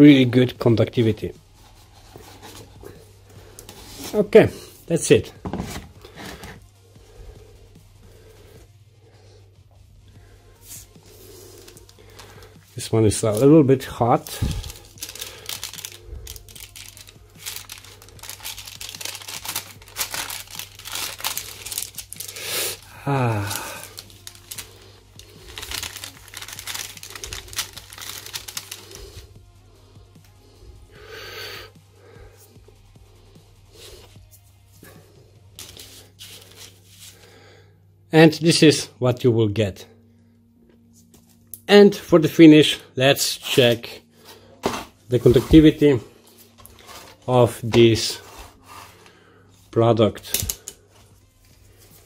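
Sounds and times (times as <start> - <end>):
baking paper rustling: 10.6 - 29.3, 35.6 - 37.2, 43.7 - 49.3.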